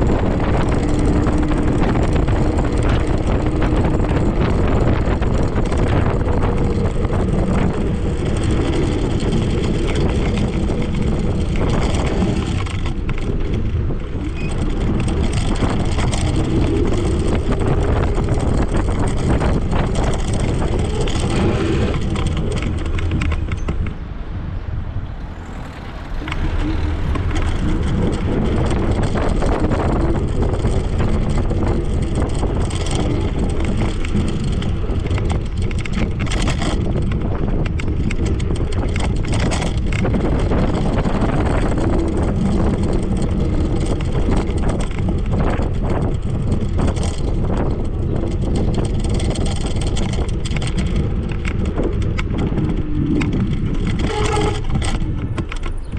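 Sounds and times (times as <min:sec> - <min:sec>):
tyre rumble: 0:00.0 - 0:55.9
wind noise on microphone: 0:00.0 - 0:55.9.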